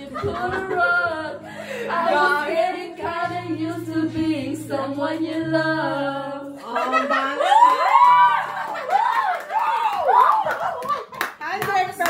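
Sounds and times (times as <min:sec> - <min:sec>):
people clapping: 0:07.5 - 0:12.0.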